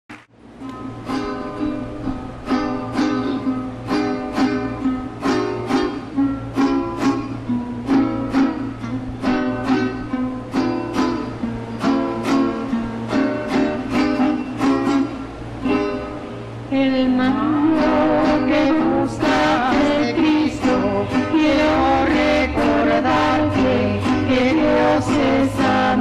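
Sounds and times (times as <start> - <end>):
steady low hum: 0.4 - 26.0
stringed instrument strumming chords: 0.4 - 26.0.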